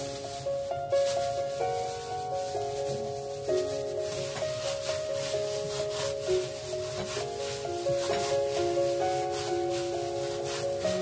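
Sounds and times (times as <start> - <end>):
background music: 0.0 - 11.0
gloved hand kneading minced meat: 0.0 - 11.0.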